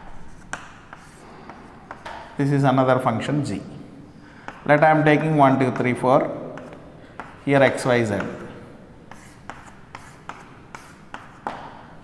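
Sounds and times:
chalk strokes on chalkboard: 0.1s - 2.4s, 9.1s - 11.9s.

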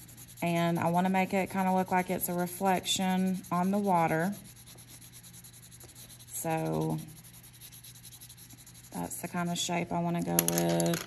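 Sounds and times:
pencil scratching on paper: 0.0s - 9.8s.

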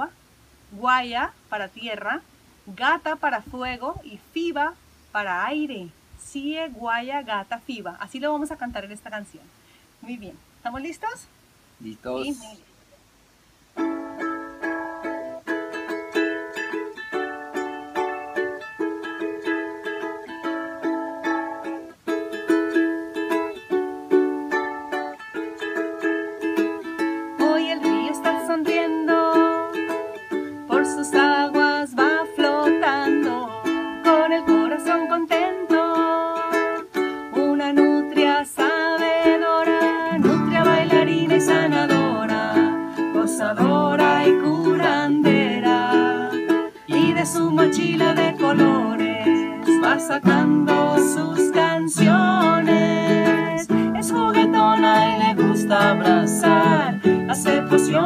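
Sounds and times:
strummed ukulele and guitar: 13.8s - 58.0s
woman singing: 27.0s - 58.0s
man singing: 40.1s - 58.0s.

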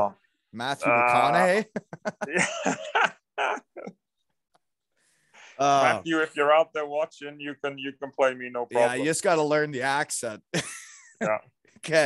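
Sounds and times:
man laughing: 1.3s - 4.0s, 10.5s - 11.5s.

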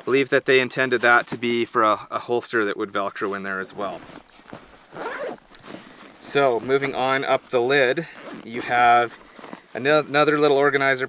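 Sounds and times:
backpack zipper pulled: 4.0s - 7.2s, 8.0s - 9.8s.

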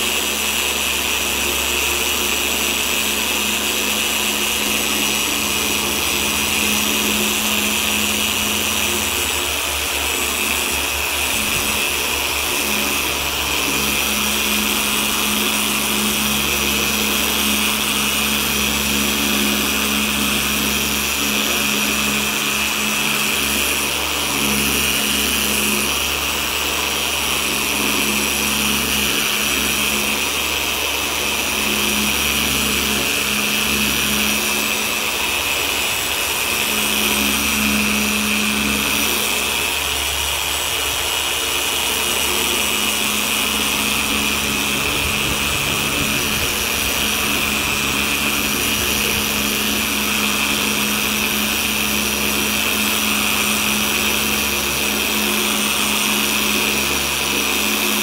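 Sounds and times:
polisher running with steady hum: 0.0s - 58.0s.

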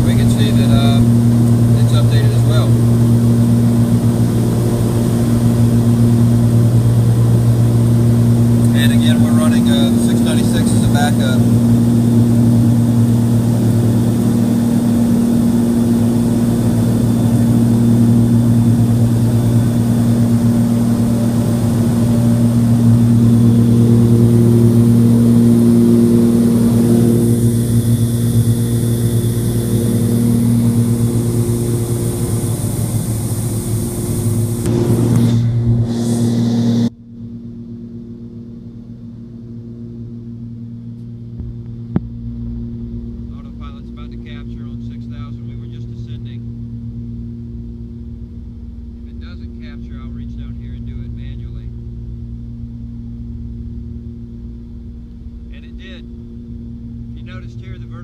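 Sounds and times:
aircraft cabin engine drone: 0.0s - 58.0s.

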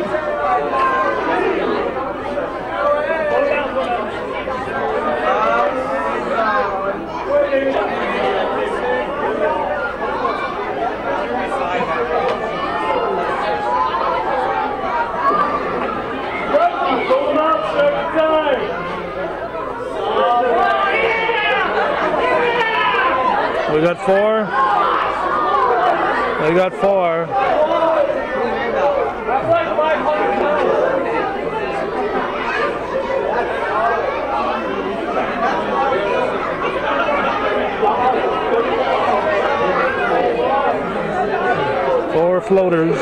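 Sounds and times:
crowd chatter echoing indoors: 0.0s - 43.0s.

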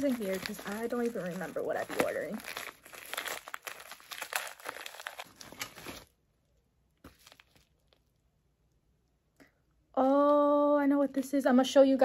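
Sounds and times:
plastic bag crinkling and tearing: 0.0s - 6.2s, 7.1s - 8.1s.

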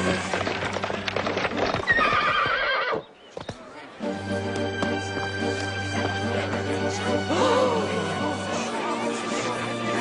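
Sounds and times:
horse hooves clip-clopping: 0.0s - 3.6s
horse whinnying: 1.9s - 3.0s.

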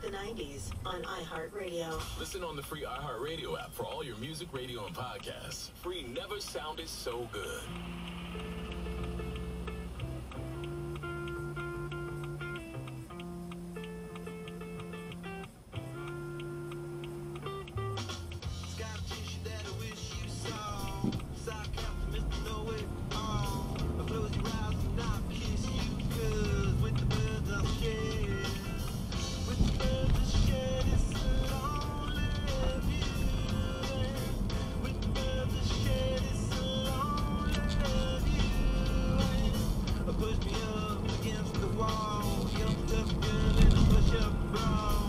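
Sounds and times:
radio music with singing: 0.0s - 14.9s, 15.5s - 45.0s
car engine and tyres rumbling: 0.0s - 45.0s.

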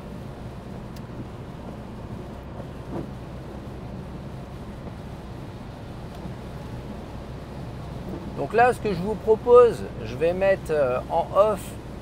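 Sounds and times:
car road and engine noise: 0.0s - 12.0s
tyres on wet road: 0.0s - 12.0s.

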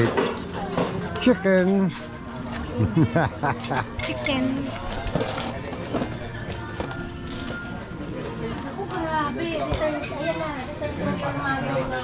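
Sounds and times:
faint background music: 0.0s - 12.0s
indistinct diners' voices: 0.0s - 12.0s.

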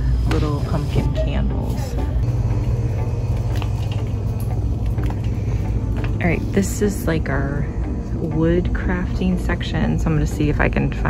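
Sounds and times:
indoor shop background rumble: 0.0s - 11.0s.

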